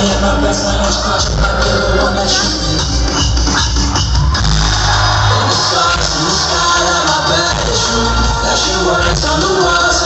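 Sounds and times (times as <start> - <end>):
heavy bass line: 0.0 - 10.0
live electronic pop music: 0.0 - 10.0.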